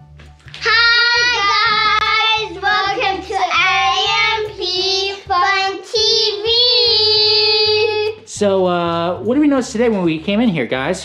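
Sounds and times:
faint low backing music: 0:00.0 - 0:11.0
children singing a jingle: 0:00.6 - 0:08.2.

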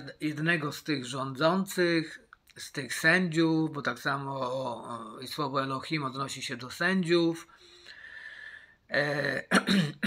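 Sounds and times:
faint breathy hiss: 0:07.4 - 0:09.4
man clearing his throat: 0:09.2 - 0:10.0.

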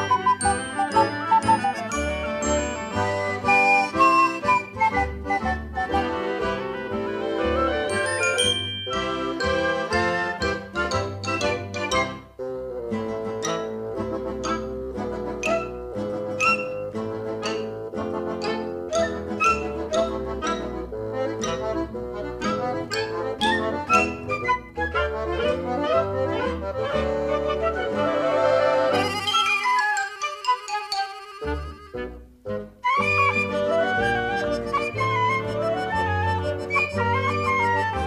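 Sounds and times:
instrumental music with struck notes: 0:00.0 - 0:38.0.

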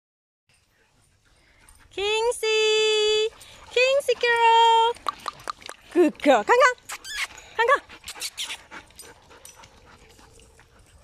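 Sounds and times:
person calling a dog: 0:06.0 - 0:08.6.

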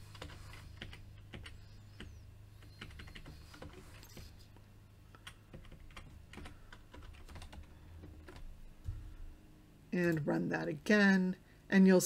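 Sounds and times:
keyboard typing: 0:00.0 - 0:04.4, 0:05.2 - 0:08.6.

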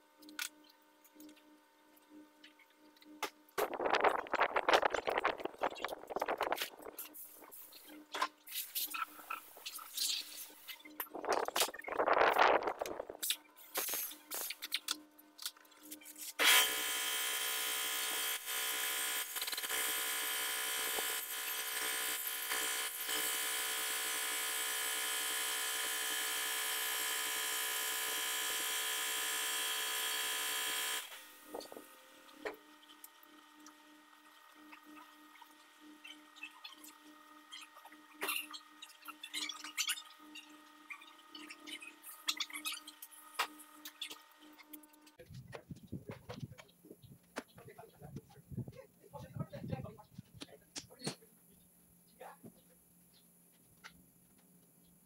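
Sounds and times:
air tool hissing whir: 0:16.4 - 0:31.9.

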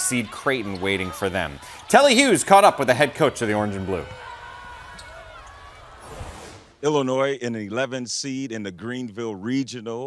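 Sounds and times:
faint arena noise: 0:00.0 - 0:08.4.

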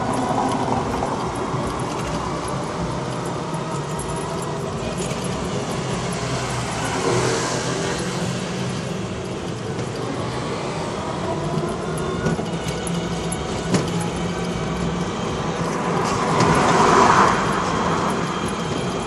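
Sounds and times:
tyres rumbling on road: 0:00.0 - 0:19.0.

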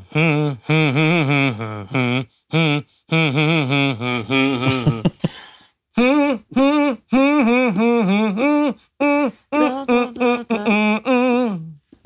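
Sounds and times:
man humming a melody: 0:00.0 - 0:05.3, 0:05.9 - 0:12.0.

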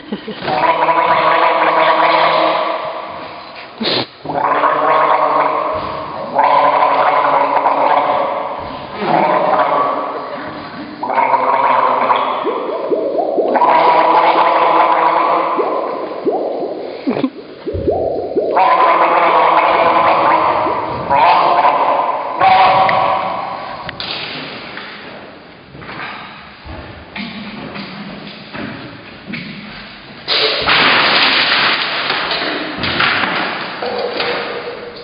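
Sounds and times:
person gargling: 0:00.4 - 0:23.9
dense held pitched tones: 0:00.5 - 0:24.8.

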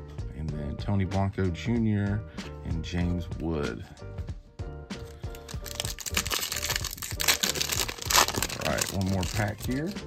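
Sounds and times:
background music: 0:00.0 - 0:10.0
foil wrapper crinkling: 0:05.1 - 0:10.0.

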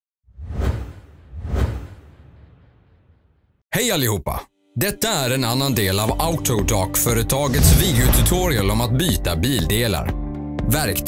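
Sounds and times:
whoosh sound effects: 0:07.4 - 0:08.8
deep bass rumble: 0:07.4 - 0:09.1.

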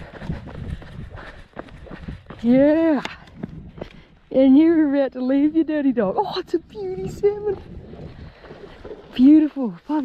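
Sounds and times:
footsteps crunching on gravel: 0:07.0 - 0:10.0.

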